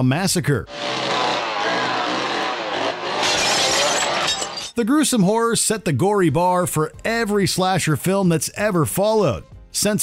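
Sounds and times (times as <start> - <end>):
chainsaw engine at high revs: 0.7 - 4.6.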